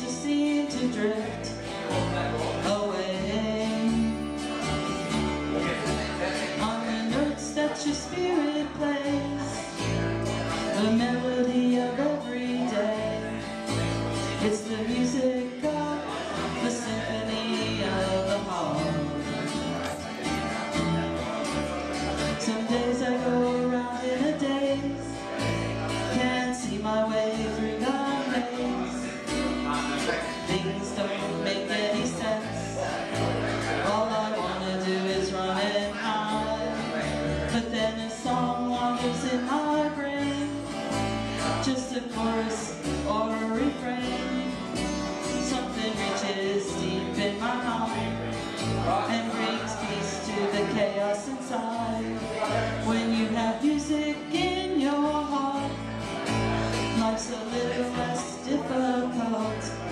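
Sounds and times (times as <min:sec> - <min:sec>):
acoustic bass guitar: 0:00.0 - 0:59.9
strummed acoustic guitar: 0:00.0 - 0:59.9.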